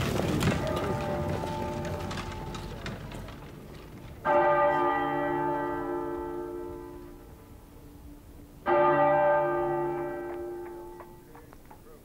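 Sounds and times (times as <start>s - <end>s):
heavy bell tolling: 0.4s - 3.2s, 4.2s - 11.4s.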